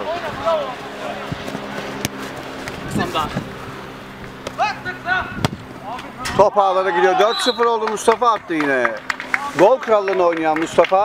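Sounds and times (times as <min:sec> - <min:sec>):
players shouting: 0:04.4 - 0:08.8
football being kicked: 0:05.4 - 0:05.6.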